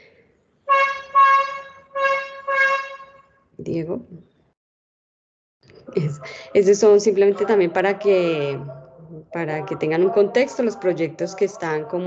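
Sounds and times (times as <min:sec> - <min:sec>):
horn honking short blasts: 0:00.7 - 0:03.3.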